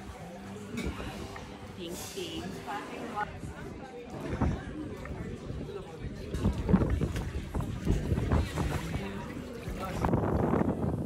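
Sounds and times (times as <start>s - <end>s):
water sloshing: 4.1s - 10.3s
wind buffeting microphone: 4.2s - 11.0s.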